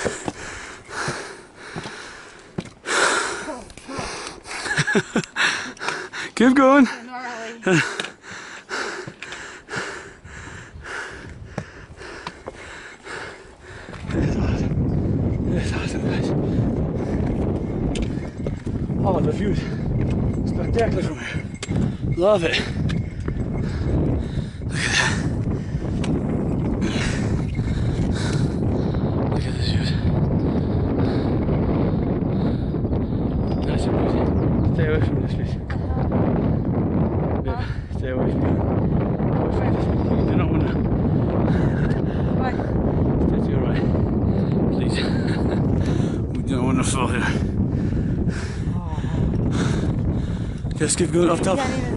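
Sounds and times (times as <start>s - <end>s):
hard fast breathing: 0.0s - 33.6s, 40.6s - 43.0s, 43.7s - 50.8s
wind buffeting microphone: 0.0s - 51.9s.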